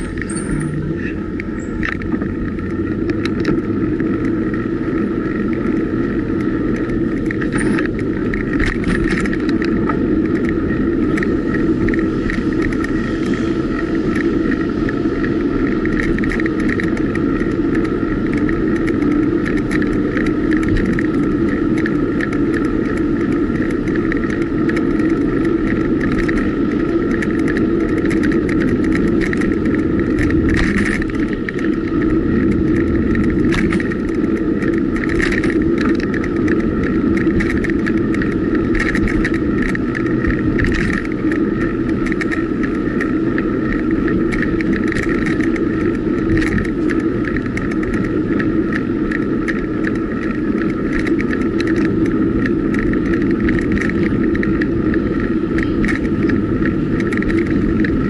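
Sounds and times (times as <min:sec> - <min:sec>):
bike clicks and rattles: 0:00.0 - 0:58.0
wind and tyre noise: 0:00.0 - 0:58.0.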